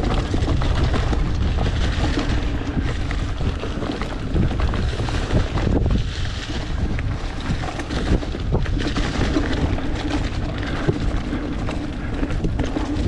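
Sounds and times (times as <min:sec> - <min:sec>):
bike knocking and rattling: 0:00.0 - 0:13.0
tyres rumbling on loose dirt: 0:00.0 - 0:13.0
wind buffeting microphone: 0:00.0 - 0:13.0.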